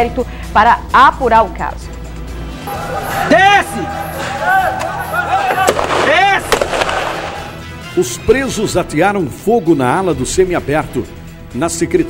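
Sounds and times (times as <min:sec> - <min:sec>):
people shouting: 0:02.4 - 0:07.6
sharp bangs: 0:02.5 - 0:07.6
loud crack: 0:03.9 - 0:07.6.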